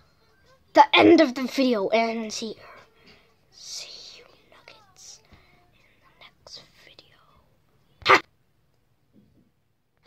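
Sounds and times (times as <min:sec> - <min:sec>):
person whispering faintly: 0:03.7 - 0:07.5.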